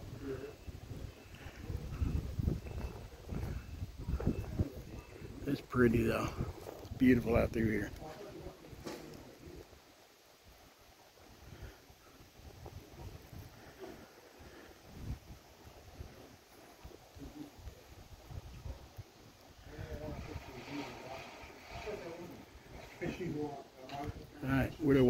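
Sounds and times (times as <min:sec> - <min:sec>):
wind rumble on microphone: 0:00.0 - 0:09.7, 0:11.2 - 0:23.0
faint voices: 0:00.0 - 0:25.0.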